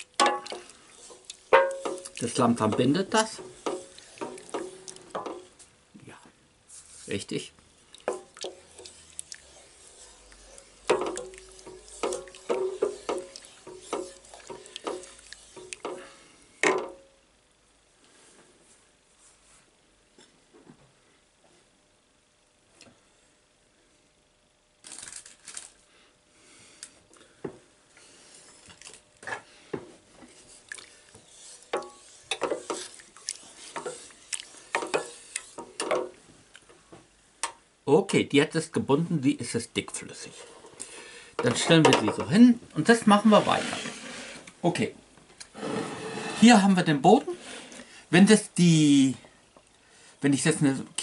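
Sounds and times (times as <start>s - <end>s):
wooden spoon scraping a pot: 0.0s - 5.6s, 8.0s - 16.2s, 30.3s - 36.1s, 42.9s - 44.6s, 45.4s - 48.0s
thick sauce bubbling: 3.4s - 5.4s, 7.9s - 16.0s.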